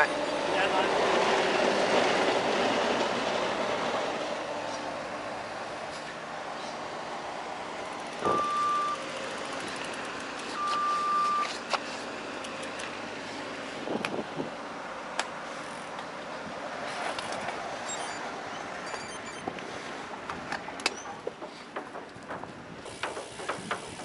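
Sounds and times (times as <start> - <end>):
rushing noise of riding: 0.0 - 24.0
reversing alarm beep: 8.2 - 9.0, 10.6 - 11.5
light clicks and knocks: 20.3 - 24.0.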